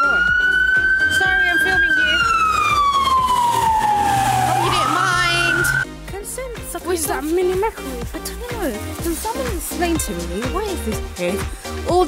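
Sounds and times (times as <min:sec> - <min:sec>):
emergency vehicle siren wailing: 0:00.0 - 0:05.9.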